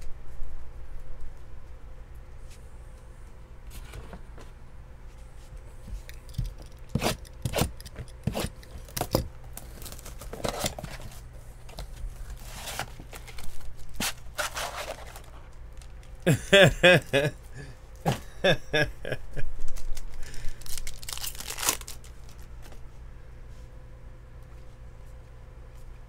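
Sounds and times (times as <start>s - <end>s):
plastic wrap tearing and crinkling: 8.3s - 11.2s, 12.2s - 16.3s, 19.6s - 22.8s
person laughing: 16.2s - 19.6s.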